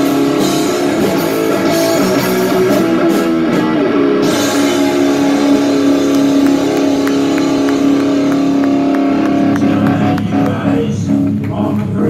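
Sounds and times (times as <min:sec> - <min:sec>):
distorted guitar chord: 0:00.0 - 0:11.5
drum and cymbal hits: 0:00.0 - 0:12.0.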